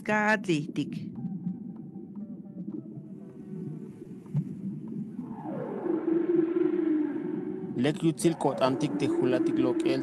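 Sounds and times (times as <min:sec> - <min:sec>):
low rumbling background: 0:00.0 - 0:10.0
low tone sliding down: 0:01.2 - 0:10.0.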